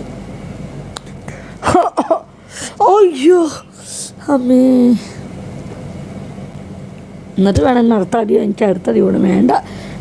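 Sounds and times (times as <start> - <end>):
steady background hum and hiss: 0.0 - 10.0.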